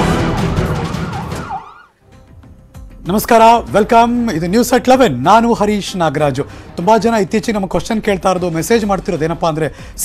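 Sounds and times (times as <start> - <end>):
music: 0.0 - 10.0
siren wailing: 0.2 - 2.0.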